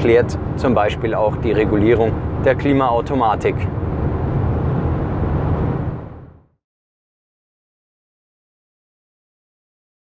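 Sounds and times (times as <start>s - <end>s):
low engine drone: 0.0s - 6.5s
road and tyre noise: 0.0s - 6.6s.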